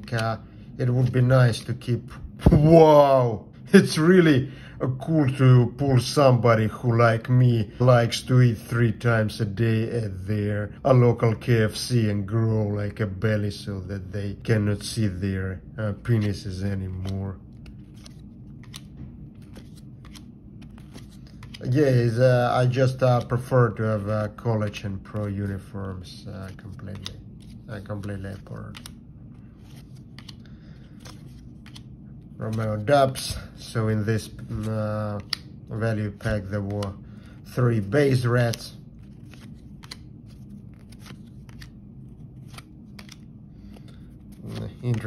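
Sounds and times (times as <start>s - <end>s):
cards flipping and clicking: 0.0s - 0.4s, 16.1s - 22.2s, 22.8s - 23.5s, 24.6s - 33.4s, 34.0s - 45.0s
faint low hum: 0.0s - 45.0s.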